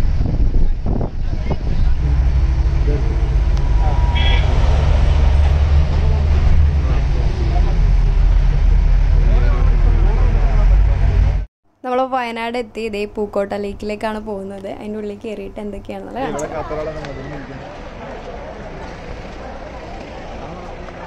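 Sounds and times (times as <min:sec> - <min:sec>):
bus engine and road rumble: 0:00.0 - 0:11.5, 0:14.6 - 0:21.0.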